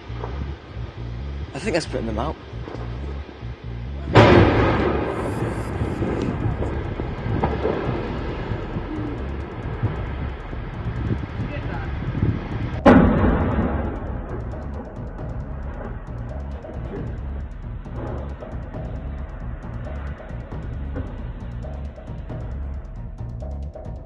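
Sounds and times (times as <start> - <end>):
music with low drum hits: 0.0 - 24.0
explosion bangs with rumbling tail: 4.1 - 23.3.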